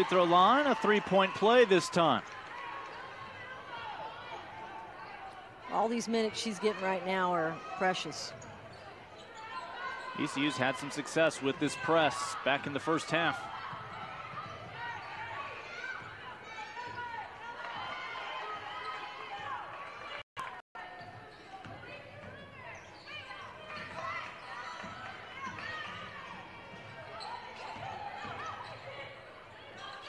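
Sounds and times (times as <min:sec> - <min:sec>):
player and crowd voices: 0:00.0 - 0:30.0.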